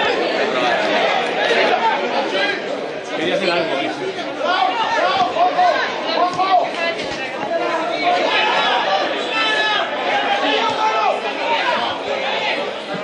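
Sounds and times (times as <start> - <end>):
spectators chatting: 0.0 - 13.0.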